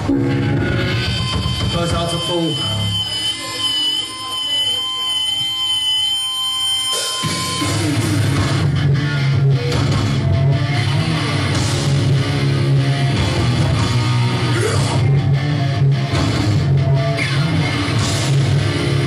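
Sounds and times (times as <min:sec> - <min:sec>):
punk band playing: 0:00.0 - 0:04.2, 0:06.9 - 0:19.0
electric guitar feedback: 0:00.0 - 0:19.0.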